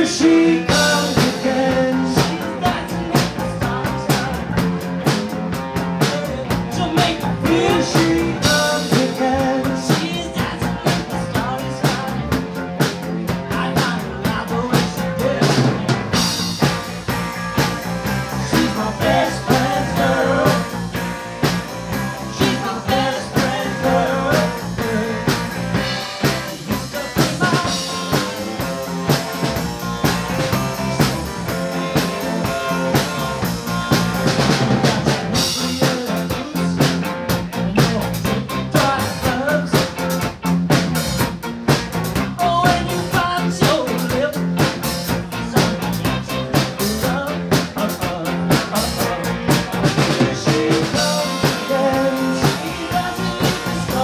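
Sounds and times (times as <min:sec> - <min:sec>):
drum kit beat: 0:00.0 - 0:54.0
live rock band playing: 0:00.0 - 0:54.0.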